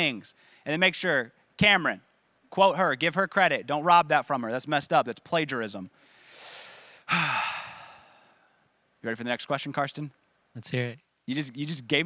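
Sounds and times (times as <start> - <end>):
person sighing: 6.4 - 8.6.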